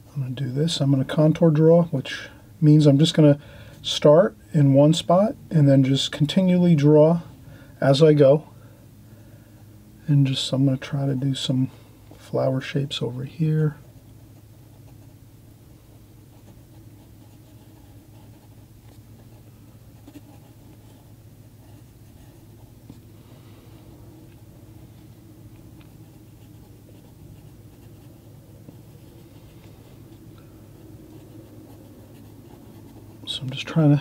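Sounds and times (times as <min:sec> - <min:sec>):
steady low hum: 0:00.0 - 0:34.0
pencil scratching on paper: 0:16.3 - 0:23.1, 0:25.8 - 0:33.6.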